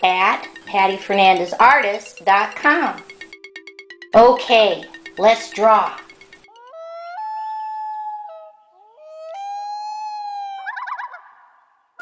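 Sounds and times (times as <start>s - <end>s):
long wavering howl: 6.5s - 10.6s.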